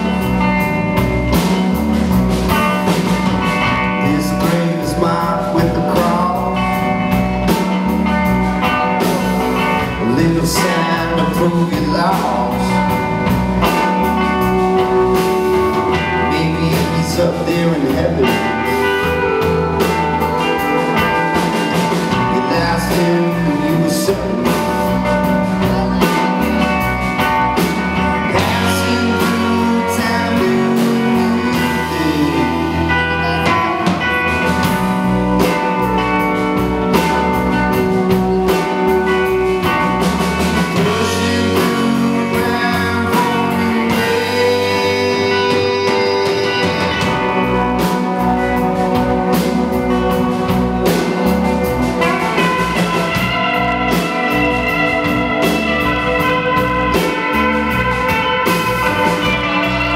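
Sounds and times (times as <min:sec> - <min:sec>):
live rock band playing: 0:00.0 - 0:59.9.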